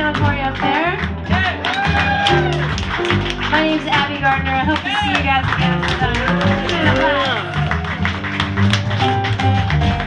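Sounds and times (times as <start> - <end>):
low bass notes: 0.0 - 10.0.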